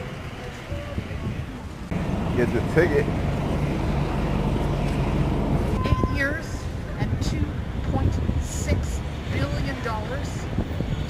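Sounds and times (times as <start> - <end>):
low rumble of traffic: 0.0 - 11.0
short steady beep: 5.8 - 6.3.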